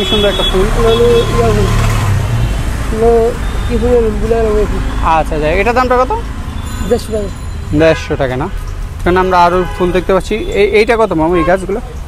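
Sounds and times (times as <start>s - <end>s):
road traffic hum: 0.0s - 12.0s
person speaking: 2.8s - 12.0s.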